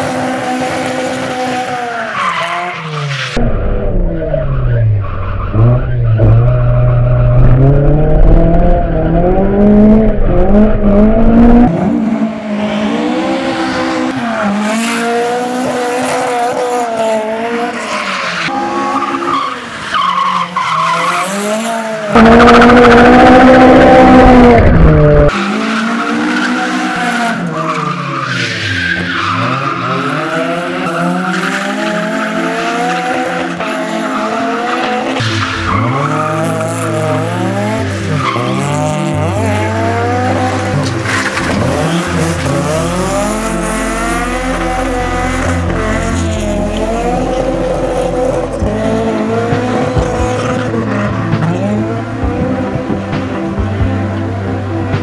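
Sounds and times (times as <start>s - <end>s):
car engine revving: 0.0s - 28.4s, 29.0s - 55.0s
tyres skidding and squealing: 0.0s - 54.0s.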